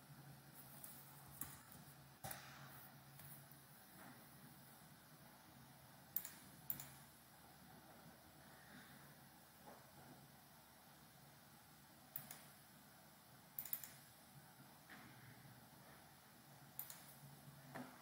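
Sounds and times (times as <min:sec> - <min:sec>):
computer mouse and keyboard clicks: 0:00.8 - 0:02.5, 0:06.2 - 0:07.1, 0:12.1 - 0:12.6, 0:13.6 - 0:14.1, 0:16.8 - 0:18.0.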